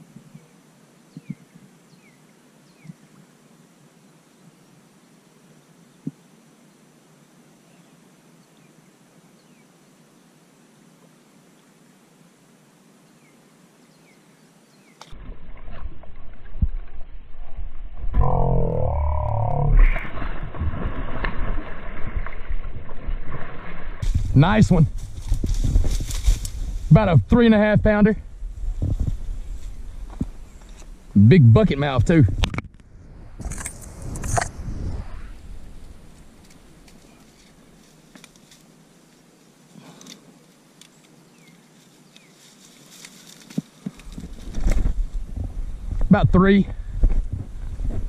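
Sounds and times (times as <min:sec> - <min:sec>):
faint hiss: 0:00.0 - 0:15.2, 0:24.0 - 0:48.0
rustling grass: 0:20.2 - 0:46.1.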